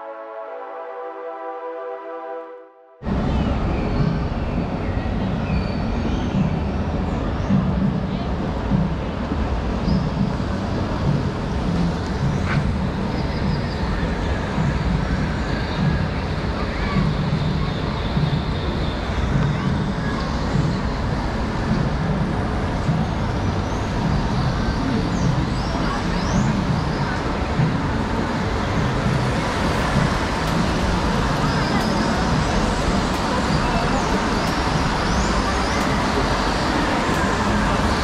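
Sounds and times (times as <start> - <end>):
crowd chatter: 3.0 - 38.0
loud rushing noise: 3.0 - 38.0.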